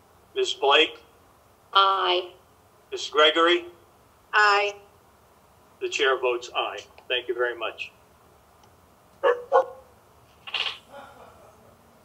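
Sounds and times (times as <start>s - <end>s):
dog barking: 9.2s - 9.9s.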